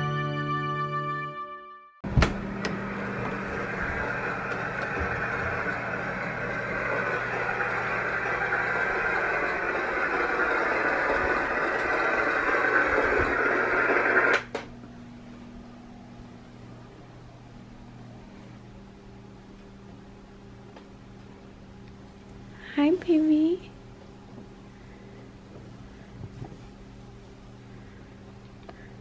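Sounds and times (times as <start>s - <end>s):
white-noise machine hissing: 2.1s - 29.0s.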